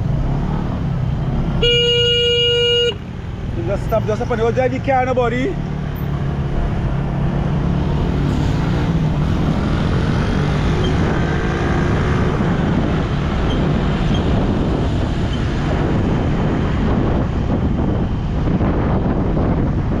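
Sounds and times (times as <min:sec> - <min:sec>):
wind and road noise: 0:00.0 - 0:20.0
motorcycle engine cruising: 0:05.5 - 0:20.0.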